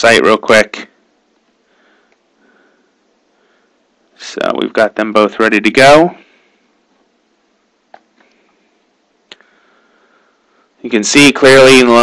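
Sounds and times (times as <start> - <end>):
faint breaths through nose: 1.6 - 4.0, 8.2 - 10.8.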